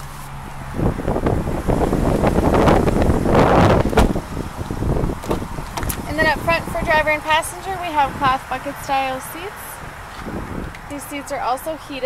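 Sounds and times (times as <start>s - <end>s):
wind buffeting microphone: 0.4s - 12.0s.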